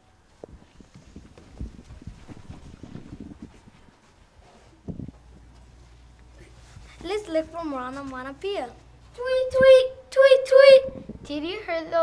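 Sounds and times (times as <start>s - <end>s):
children's footsteps on floor: 0.3s - 9.0s.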